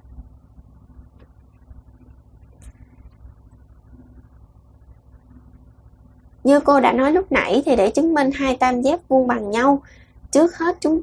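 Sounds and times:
faint hum: 0.0 - 11.0
low background rumble: 0.0 - 11.0.

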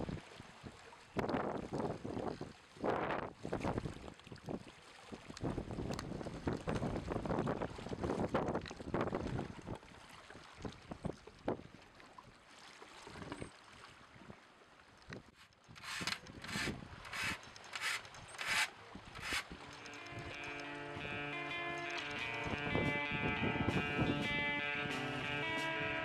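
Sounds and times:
wind buffeting microphone: 5.4 - 9.8, 15.7 - 17.4.

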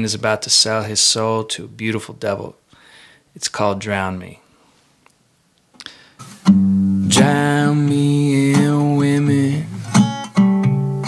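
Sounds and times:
guitar chord strummed: 6.5 - 11.0.

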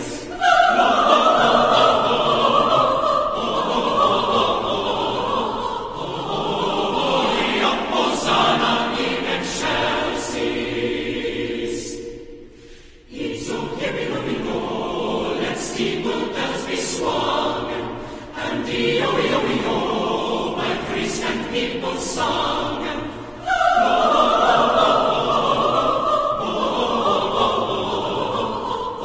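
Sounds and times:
mixed choir singing a carol: 0.0 - 29.0.

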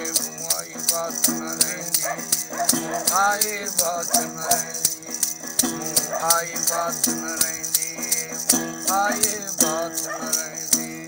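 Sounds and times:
rattling click rhythm: 0.0 - 11.0.

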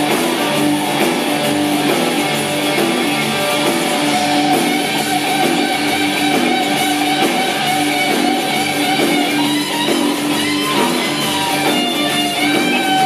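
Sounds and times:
bass guitar: 0.0 - 13.0
drums: 0.0 - 13.0
electric guitars: 0.0 - 13.0.

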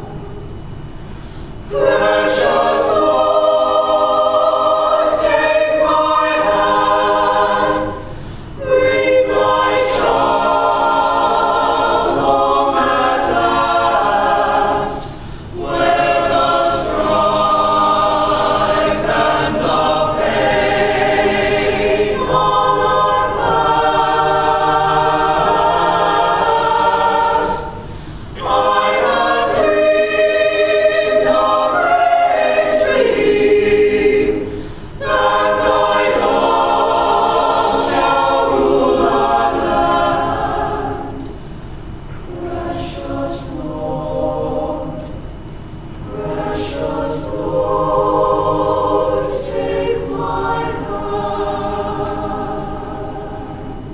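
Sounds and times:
choir singing in parts: 1.5 - 53.9.

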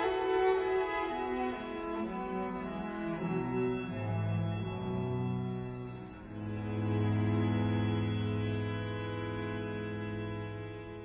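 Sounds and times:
bowed strings playing chords: 0.0 - 11.0.

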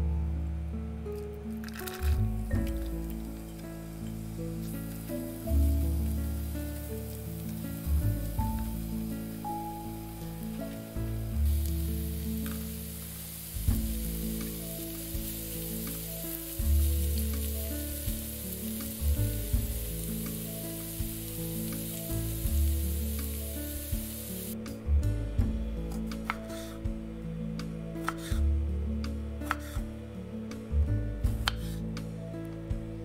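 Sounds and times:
light background music: 0.0 - 33.0
vegetables sizzling in oil: 1.7 - 24.6.

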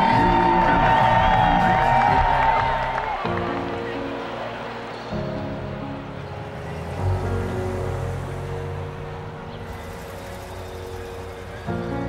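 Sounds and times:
hum of busy street: 3.3 - 12.0
cars driving past: 4.2 - 12.0.

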